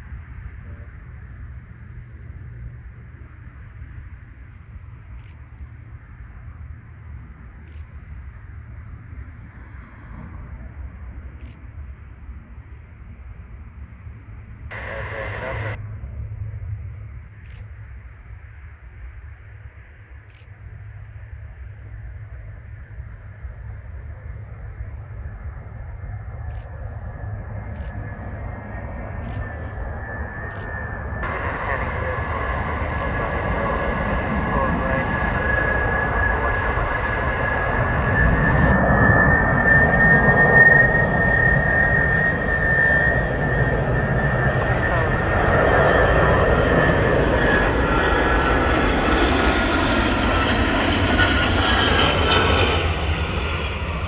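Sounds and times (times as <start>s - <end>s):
jet engines whining and rumbling: 0.0s - 54.0s.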